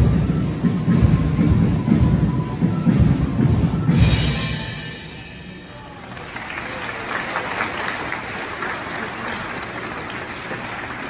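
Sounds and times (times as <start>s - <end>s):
crowd applauding: 5.7s - 11.0s.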